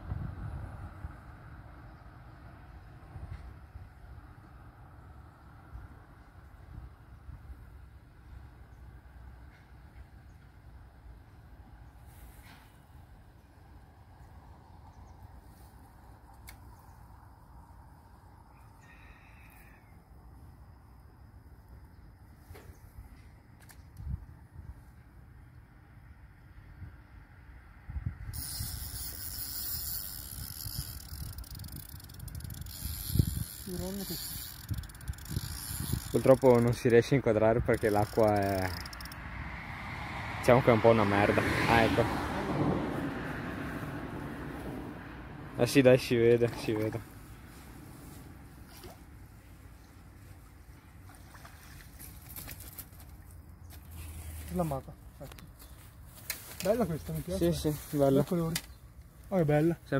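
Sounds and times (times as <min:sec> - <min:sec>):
wind rumble on microphone: 0:00.0 - 0:01.8, 0:23.8 - 0:25.1, 0:26.7 - 0:29.2, 0:30.2 - 0:36.9
fishing reel whirring: 0:28.3 - 0:39.2
net splashing in water: 0:50.8 - 0:53.3.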